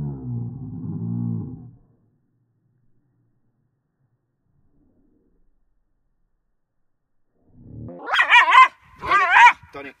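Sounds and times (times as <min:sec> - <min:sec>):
high-pitched wavering growl-barks: 0:07.5 - 0:09.6.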